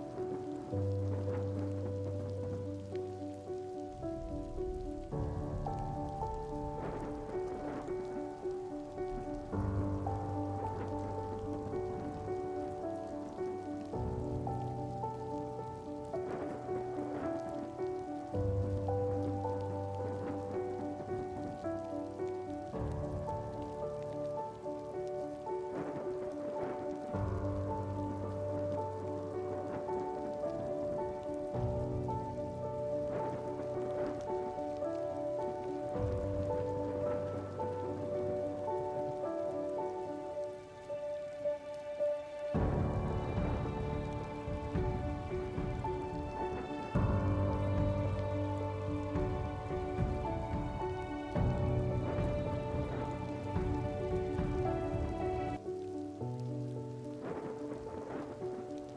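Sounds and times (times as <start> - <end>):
calm music with sustained chords: 0.0 - 58.9
rain pattering: 0.0 - 58.9.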